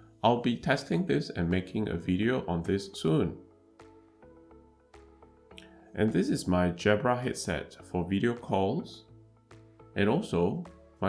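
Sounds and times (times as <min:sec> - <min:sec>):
soft music with held notes: 0:00.0 - 0:11.0.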